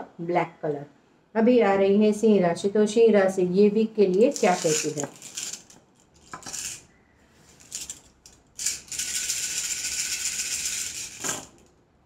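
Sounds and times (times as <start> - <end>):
shells rattling in hands: 4.1 - 6.8, 7.6 - 11.7
shells cast onto table: 11.1 - 11.7.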